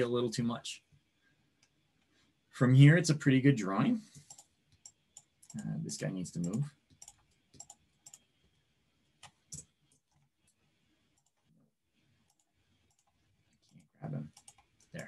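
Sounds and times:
mouse and keyboard clicks: 6.4s - 8.2s, 14.3s - 15.0s.

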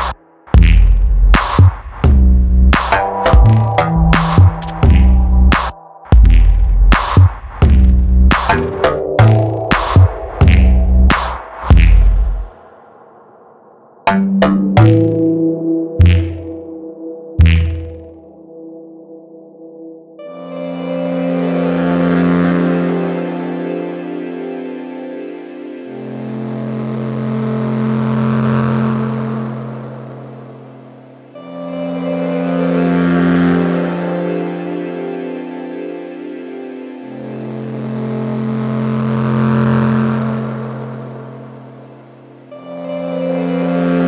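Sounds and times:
low synth note: 3.2s - 6.8s, 14.0s - 19.6s
rising noise wash: 8.6s - 14.2s.

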